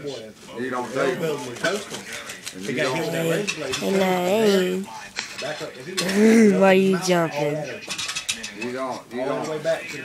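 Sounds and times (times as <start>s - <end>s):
person making wordless sounds: 2.8s - 4.8s.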